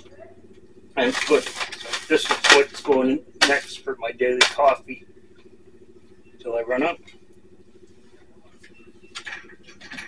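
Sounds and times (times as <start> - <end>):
faint steady hum: 0.0 - 10.0
paper bag crinkling: 1.0 - 2.9.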